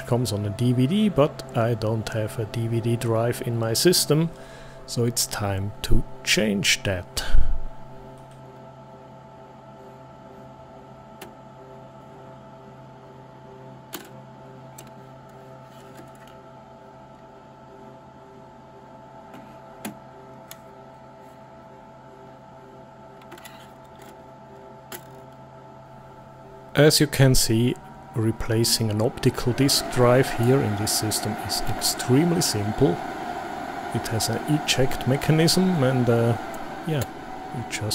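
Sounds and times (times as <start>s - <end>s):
faint steady hum: 0.0s - 37.9s.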